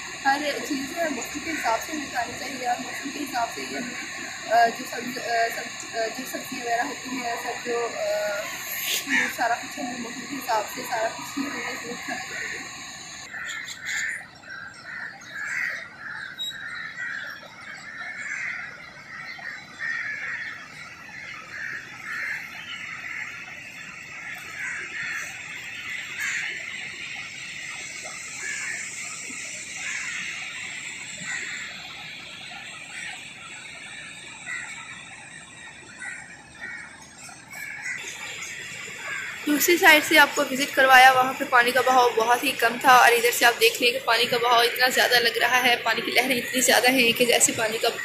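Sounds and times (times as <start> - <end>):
birds chirping: 0.0 - 48.0.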